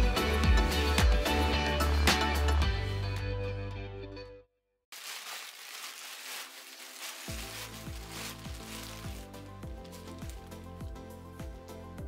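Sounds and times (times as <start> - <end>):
plastic bag crinkling: 4.9 - 10.6
background music with low beat: 7.3 - 12.0.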